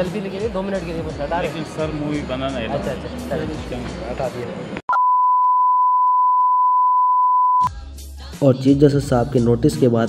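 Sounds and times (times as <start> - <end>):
censor bleep: 4.9 - 7.7.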